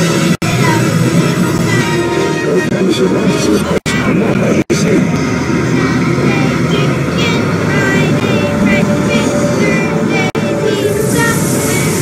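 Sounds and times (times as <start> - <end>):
children's song: 0.0 - 4.1, 5.6 - 12.0
low rumble: 0.0 - 12.0
wavering pitched voices: 0.0 - 12.0.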